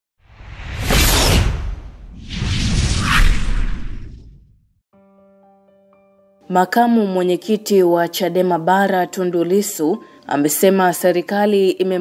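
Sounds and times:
whoosh sound effect: 0.3s - 4.6s
low rumble: 0.4s - 4.7s.

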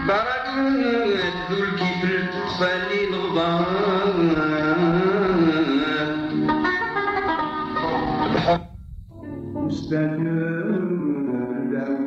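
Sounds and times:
plucked string instrument melody: 0.0s - 11.8s.

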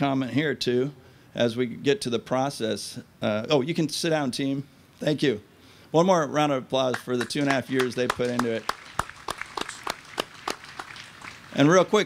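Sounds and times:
small group clapping: 6.9s - 12.0s.

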